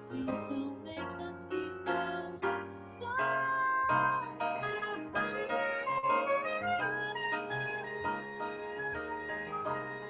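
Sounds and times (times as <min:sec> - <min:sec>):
jazz piano: 0:00.0 - 0:10.0
sustained melody line: 0:01.5 - 0:10.0.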